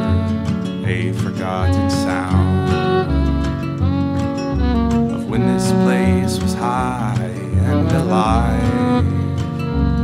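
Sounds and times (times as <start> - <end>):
bowed viola melody: 0.0 - 10.0
strummed acoustic guitar: 0.0 - 10.0
washtub bass notes: 0.0 - 10.0.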